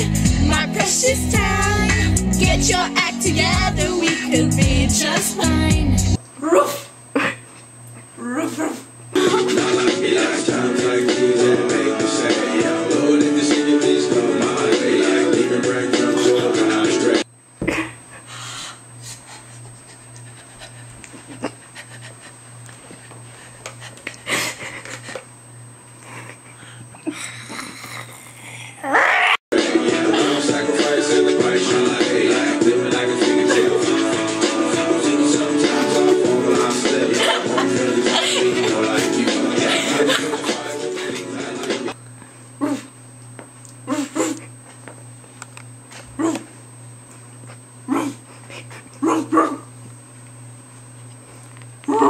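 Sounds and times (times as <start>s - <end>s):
person laughing: 6.4s - 7.6s, 8.2s - 10.0s, 17.6s - 18.3s, 19.0s - 23.2s, 23.8s - 25.2s, 26.0s - 29.0s, 33.3s - 34.2s, 35.6s - 41.3s
woman panting like a dog: 18.1s - 22.4s
dog barking: 49.0s - 49.7s.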